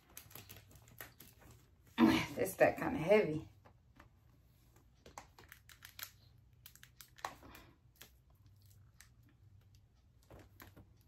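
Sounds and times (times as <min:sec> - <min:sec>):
books being handled: 0:00.0 - 0:02.0.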